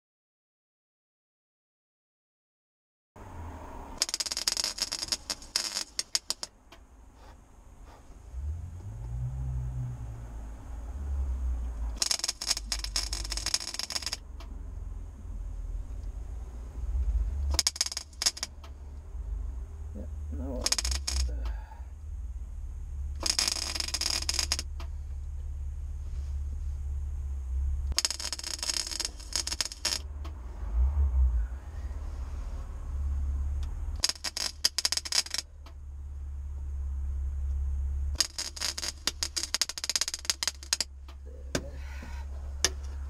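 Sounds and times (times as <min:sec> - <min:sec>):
steady low hum: 0:03.2 - 0:43.0
welding crackling: 0:04.0 - 0:06.6, 0:12.0 - 0:14.5, 0:17.5 - 0:18.8, 0:20.3 - 0:21.4, 0:23.1 - 0:25.2, 0:27.8 - 0:30.4, 0:33.9 - 0:35.8, 0:38.1 - 0:41.3.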